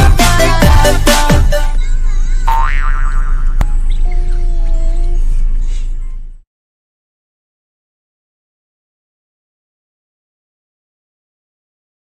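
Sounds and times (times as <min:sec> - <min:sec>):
electronic dance music: 0:00.0 - 0:01.8
cartoon boing: 0:02.5 - 0:03.7.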